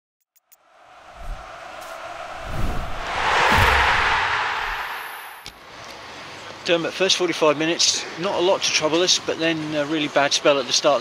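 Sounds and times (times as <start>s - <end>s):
rush of noise: 0.6s - 5.6s
low thuds: 1.0s - 5.5s.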